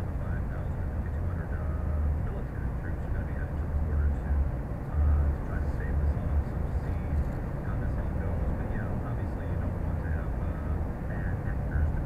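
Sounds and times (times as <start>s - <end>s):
car tyre and engine rumble: 0.0s - 12.0s.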